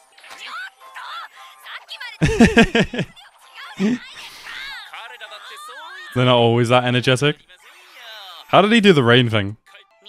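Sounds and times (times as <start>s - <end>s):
man chuckling: 2.2s - 3.1s, 3.8s - 4.0s.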